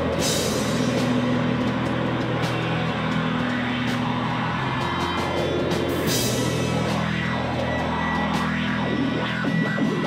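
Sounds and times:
distorted electric guitars droning: 0:00.0 - 0:10.0
drums: 0:00.0 - 0:10.0.

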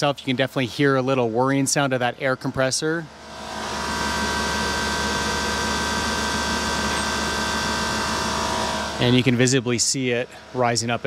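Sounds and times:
air compressor whirring: 0:03.1 - 0:11.0.

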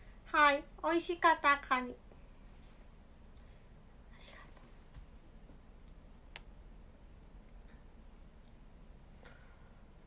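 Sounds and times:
soft breath: 0:02.1 - 0:04.8, 0:09.1 - 0:10.0.

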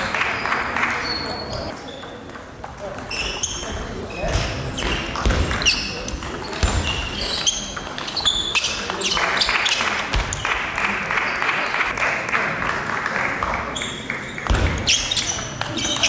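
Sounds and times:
shoes squeaking on floor: 0:00.0 - 0:10.5, 0:13.7 - 0:16.0.

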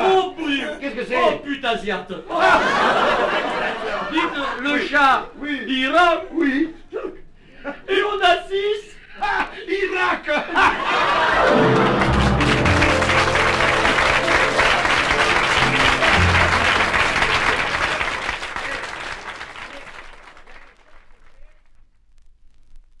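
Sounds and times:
audience laughing: 0:02.3 - 0:04.6, 0:10.4 - 0:19.4
audience applauding: 0:10.8 - 0:21.5
short musical flourish: 0:11.4 - 0:18.2.

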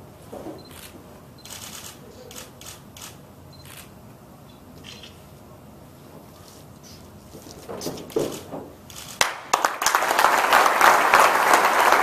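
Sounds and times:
camera shutters clicking: 0:00.7 - 0:03.9, 0:08.2 - 0:09.3.

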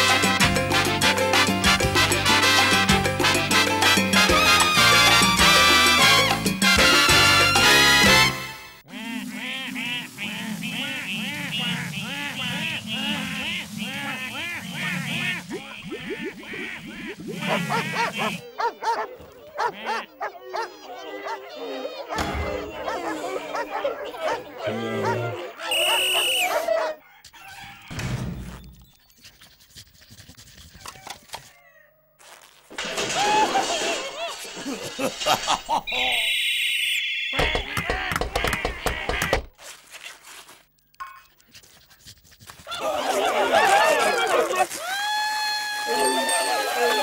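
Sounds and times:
cartoon ducks quacking: 0:08.8 - 0:26.9, 0:37.3 - 0:39.5
brief tone: 0:36.0 - 0:37.4
men screaming: 0:42.7 - 0:47.0.

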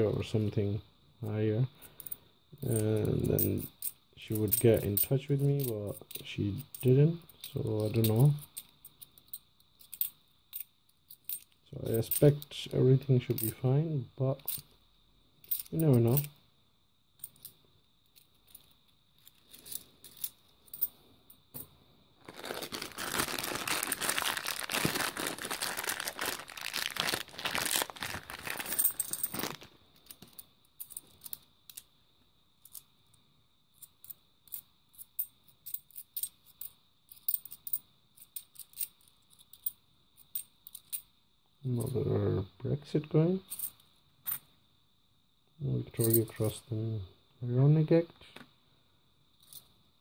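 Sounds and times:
coins clicking together: 0:15.4 - 0:16.3, 0:28.6 - 0:29.4
plastic rustling and crinkling: 0:22.2 - 0:30.4.

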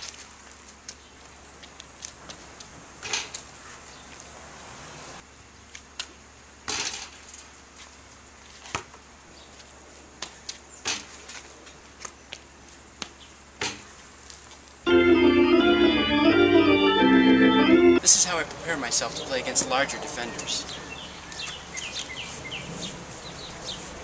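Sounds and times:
organ music: 0:14.9 - 0:18.3.

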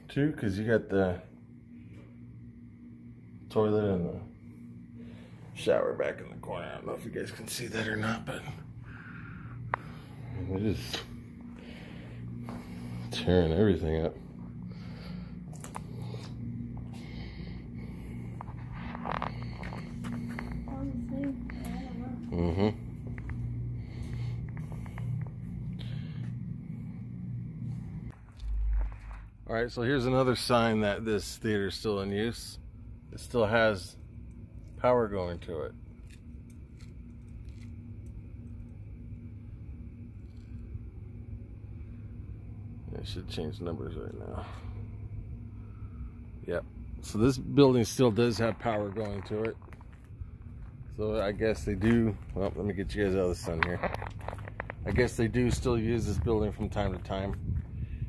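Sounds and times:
faint hum: 0:00.0 - 0:58.0
low steady background rumble: 0:00.0 - 0:58.0
footsteps: 0:18.1 - 0:22.4, 0:28.1 - 0:29.4, 0:48.3 - 0:57.7.

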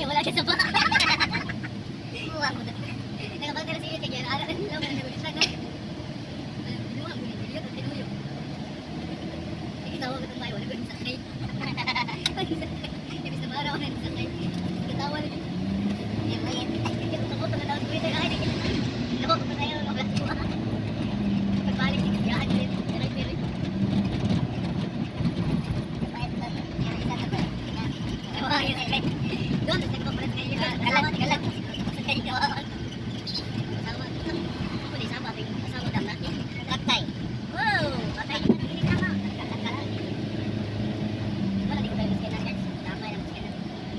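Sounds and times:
van engine and road hum: 0:00.0 - 0:43.9.

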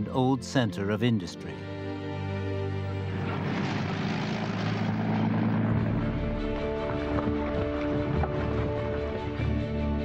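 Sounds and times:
motor engines droning: 0:02.8 - 0:09.5
low hum: 0:02.8 - 0:09.6
rushing noise: 0:03.1 - 0:07.1.

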